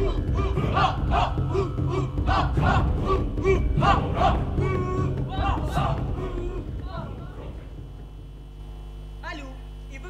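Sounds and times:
group chanting rhythmically: 0:00.0 - 0:08.3.

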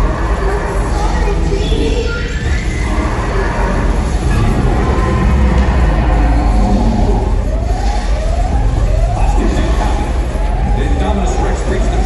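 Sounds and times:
alarm siren wailing: 0:00.0 - 0:12.0
loud low rumble: 0:00.0 - 0:12.0.

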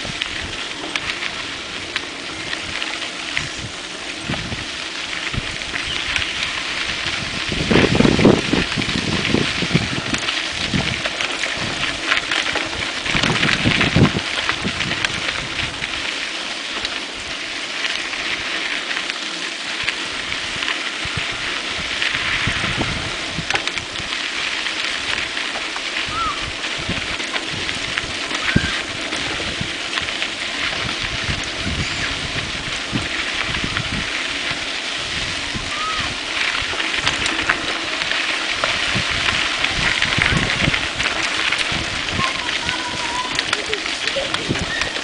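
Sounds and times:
bike bumping over rough ground: 0:00.0 - 0:45.0
wind and tyre noise: 0:00.0 - 0:45.0.

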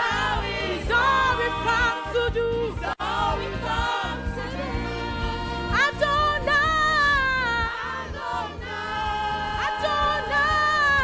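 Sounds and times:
congregation singing along: 0:00.0 - 0:11.0
woman leading gospel singing: 0:00.0 - 0:11.0.

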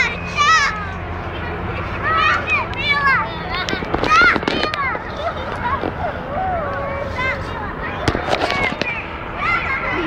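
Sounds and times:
children calling out: 0:00.0 - 0:10.0.

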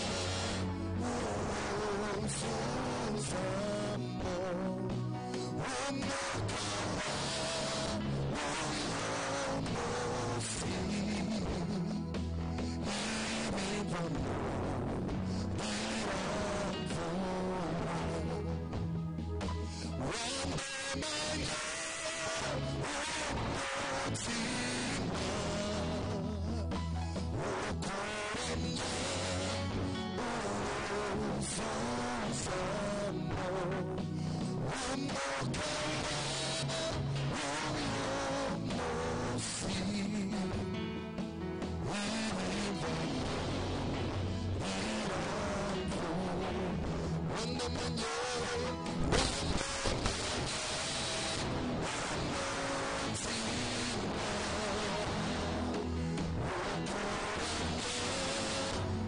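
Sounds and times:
gospel music accompaniment: 0:00.0 - 0:59.0
man singing into a microphone: 0:00.0 - 0:59.0.

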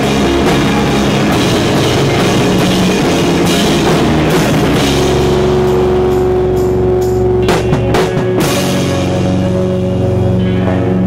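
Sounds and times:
drum and cymbal hits: 0:00.0 - 0:09.8
live punk rock band: 0:00.0 - 0:11.0.

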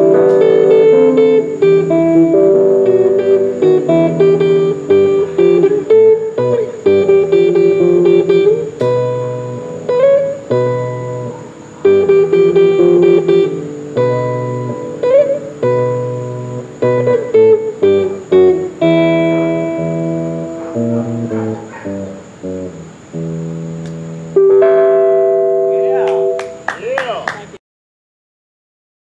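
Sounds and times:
electric guitar notes and chord: 0:00.0 - 0:26.8
sharp claps: 0:23.8 - 0:24.0, 0:26.0 - 0:27.6
voices: 0:25.6 - 0:27.6.

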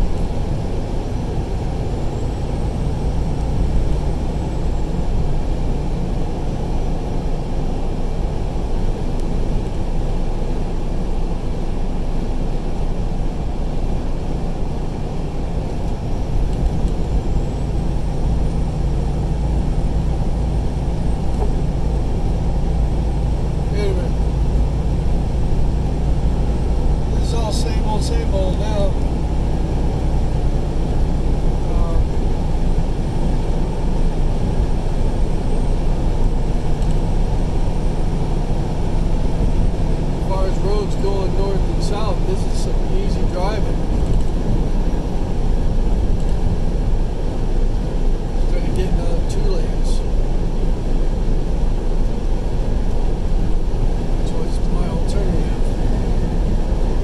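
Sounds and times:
road and engine rumble in car: 0:00.0 - 0:57.0.

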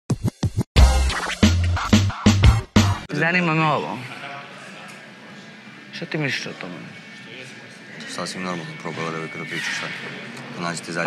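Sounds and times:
turntable scratching: 0:00.1 - 0:03.0
heavy bass beat: 0:00.2 - 0:03.1.

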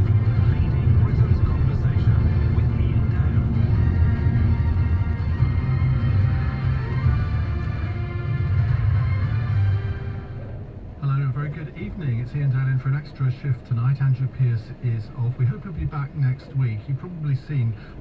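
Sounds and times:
radio music with deep bass: 0:00.0 - 0:18.0.

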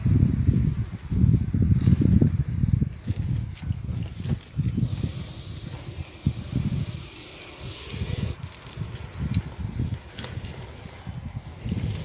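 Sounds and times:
snake hissing: 0:04.8 - 0:12.0.

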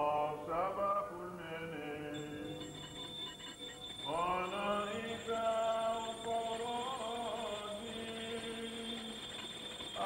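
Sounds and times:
tape hiss: 0:00.0 - 0:10.0.

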